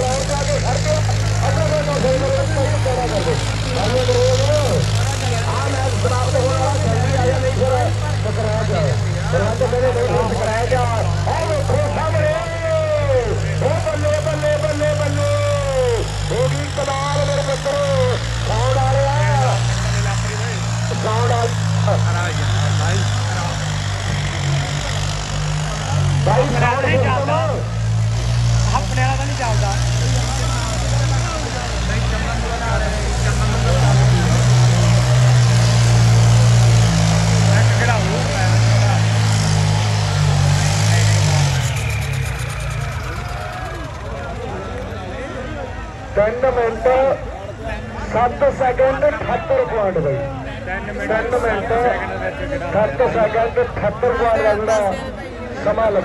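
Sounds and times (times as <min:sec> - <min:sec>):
people's voices: 0:00.0 - 0:56.0
tractor diesel engines running: 0:00.0 - 0:56.0.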